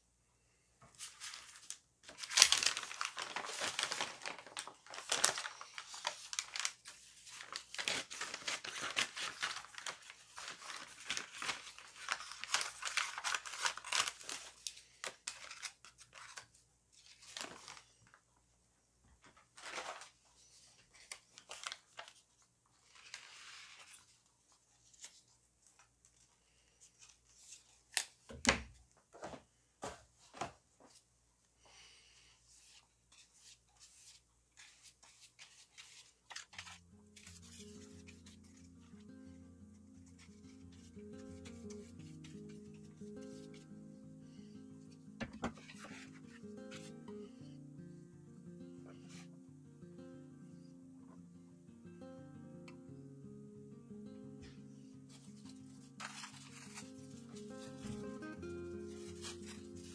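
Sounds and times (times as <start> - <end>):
paper crinkling: 0.9 - 18.2, 19.2 - 28.3, 32.6 - 43.9, 44.8 - 47.2, 54.4 - 59.9
paper tearing and rustling: 1.0 - 18.0, 19.5 - 25.2, 33.1 - 39.1, 39.7 - 43.6, 45.2 - 47.0, 55.1 - 59.9
background music: 36.8 - 59.9.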